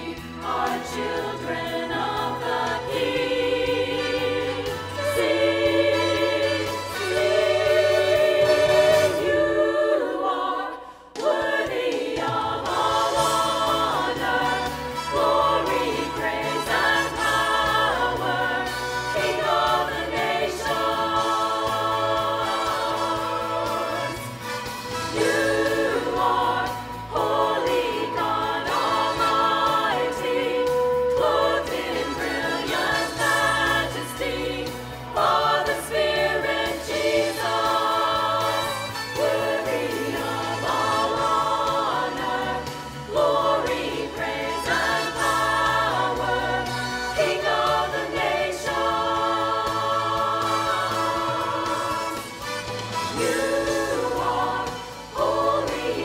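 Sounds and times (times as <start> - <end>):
church choir singing: 0.0 - 56.0.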